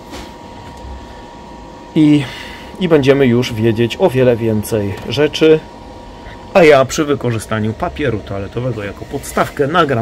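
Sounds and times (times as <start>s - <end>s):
cooling fan running: 0.0s - 10.0s.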